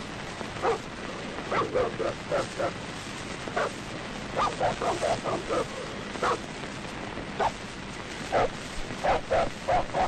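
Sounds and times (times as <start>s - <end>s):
dog barking: 0.6s - 0.9s, 1.5s - 2.8s, 3.6s - 3.8s, 4.4s - 6.4s, 8.3s - 10.0s.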